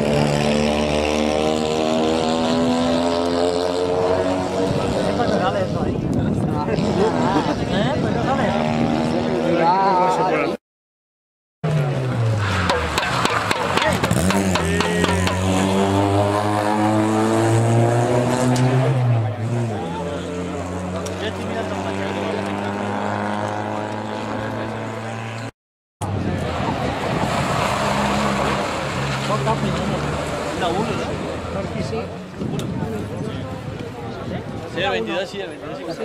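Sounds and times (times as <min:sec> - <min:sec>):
rally car engine under load: 0:11.6 - 0:32.9.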